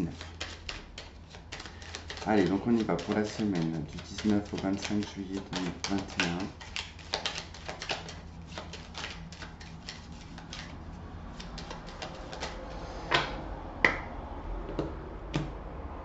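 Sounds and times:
cards being shuffled: 0.0 - 13.4.

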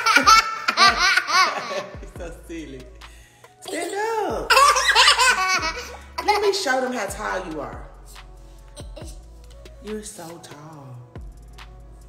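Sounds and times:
toddler girl laughing: 0.0 - 1.9, 4.5 - 6.0.

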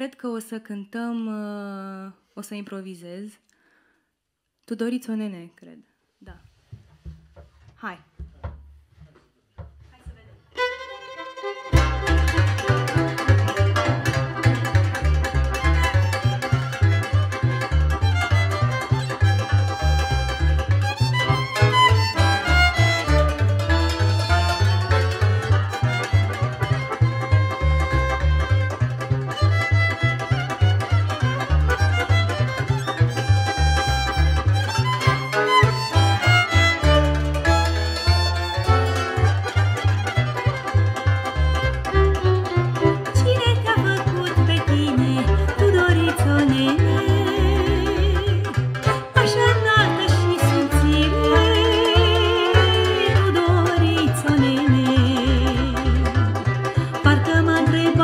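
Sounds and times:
violin melody: 10.5 - 58.0
accordion: 10.6 - 58.0
double bass: 11.6 - 58.0.

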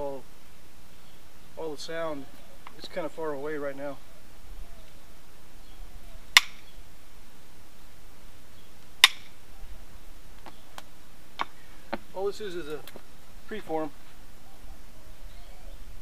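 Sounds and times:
sharp strikes on stone: 6.3 - 6.6, 9.0 - 9.3.

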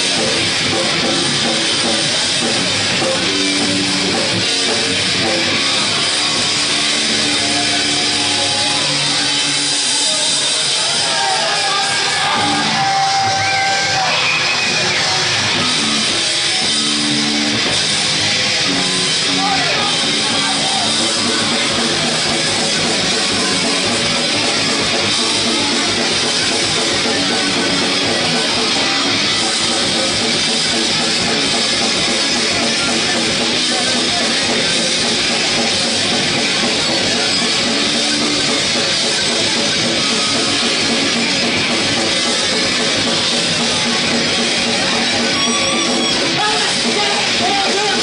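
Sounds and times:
drum kit: 0.0 - 48.0
electric guitars: 0.0 - 48.0.

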